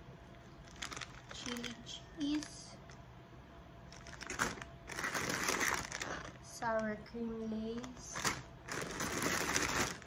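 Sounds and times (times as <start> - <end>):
plastic chip bags crinkling: 0.5 - 3.0, 3.9 - 6.9, 7.6 - 10.0.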